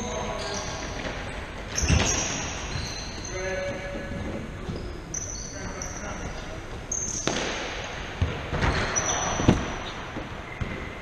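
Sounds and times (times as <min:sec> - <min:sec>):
trainers squeaking on wooden floor: 0:00.3 - 0:07.3
ball kicks echoing: 0:07.2 - 0:11.0.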